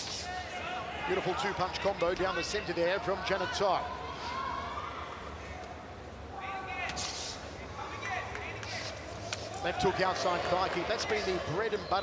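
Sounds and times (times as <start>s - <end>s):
short sharp hiss: 6.9s - 7.5s.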